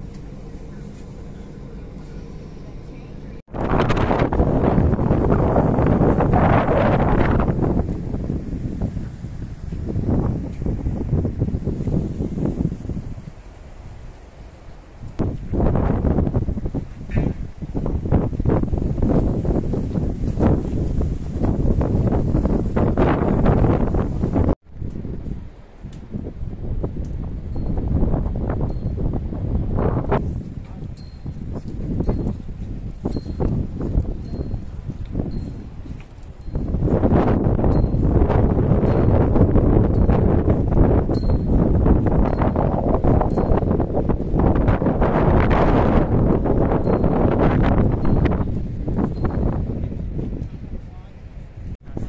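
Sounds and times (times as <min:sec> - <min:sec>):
bus cabin hum: 0:00.0 - 0:06.7
wind buffeting microphone: 0:00.0 - 0:14.3, 0:14.9 - 0:52.0.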